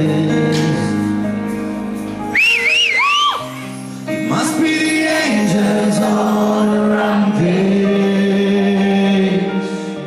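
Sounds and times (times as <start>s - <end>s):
shrill whistle from crowd: 2.3s - 3.6s.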